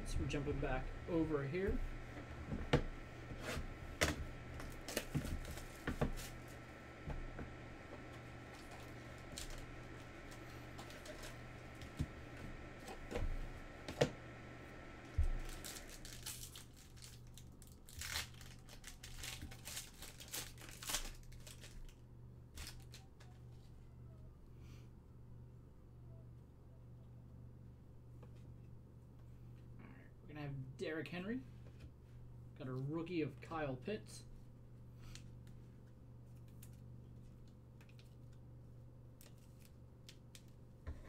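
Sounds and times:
faint steady hum: 0:00.0 - 0:41.0
foil packs tearing and crinkling: 0:04.0 - 0:06.6, 0:08.5 - 0:11.6, 0:15.2 - 0:22.0, 0:22.6 - 0:23.2
cards rustling and clicking: 0:15.3 - 0:23.6, 0:35.0 - 0:38.5, 0:39.1 - 0:40.6.

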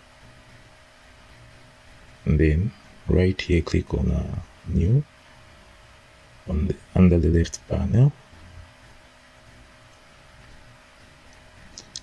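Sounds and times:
faint steady hiss: 0:00.0 - 0:12.0
low steady hum: 0:00.0 - 0:12.0.

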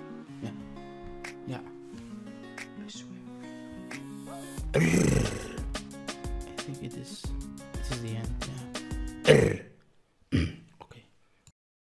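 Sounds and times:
person clearing throat: 0:04.7 - 0:05.7, 0:09.2 - 0:10.7.

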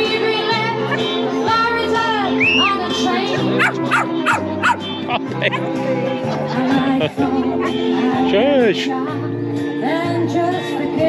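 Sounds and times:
music: 0:00.0 - 0:11.0
dog yapping: 0:03.3 - 0:04.9
dog whining: 0:03.3 - 0:05.7.

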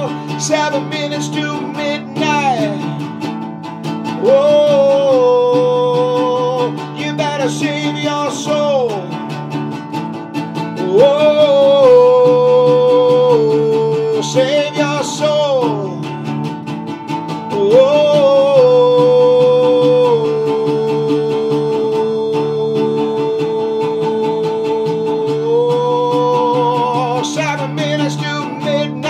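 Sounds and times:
man singing long notes: 0:00.0 - 0:03.3, 0:04.0 - 0:09.3, 0:10.7 - 0:16.3, 0:17.4 - 0:29.0
strummed acoustic guitar: 0:00.0 - 0:29.0.

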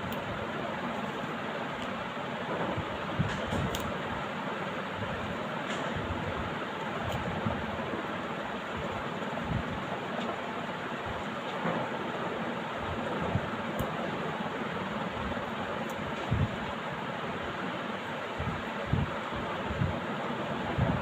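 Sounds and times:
steady background noise: 0:00.0 - 0:21.0.

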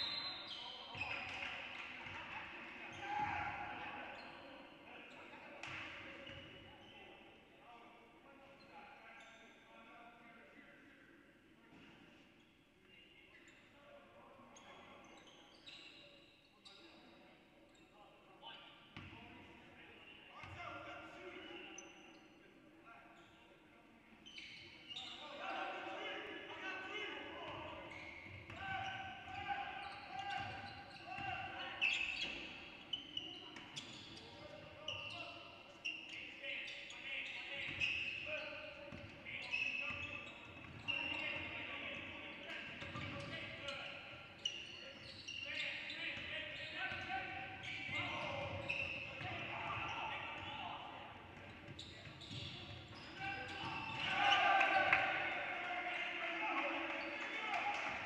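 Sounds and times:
sneakers squeaking: 0:00.0 - 0:02.2, 0:14.5 - 0:19.2, 0:20.4 - 0:22.4, 0:24.2 - 0:25.6, 0:26.6 - 0:58.0
players shouting: 0:53.1 - 0:58.0.

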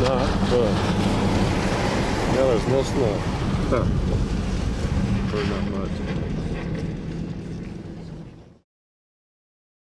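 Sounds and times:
car engine drone: 0:00.0 - 0:08.6
road rumble: 0:00.0 - 0:08.6.

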